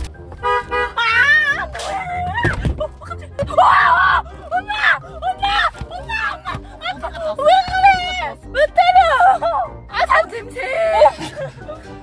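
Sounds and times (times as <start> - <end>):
woman shouting: 0.8 - 11.2.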